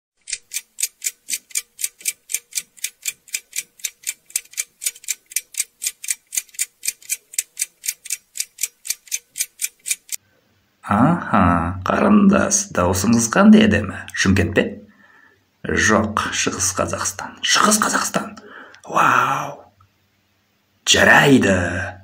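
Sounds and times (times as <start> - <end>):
clock ticking: 0.2 - 10.2.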